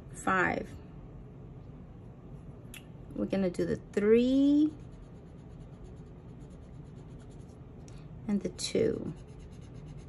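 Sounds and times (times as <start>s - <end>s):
marker scratching on paper: 4.5s - 7.6s, 9.0s - 10.0s.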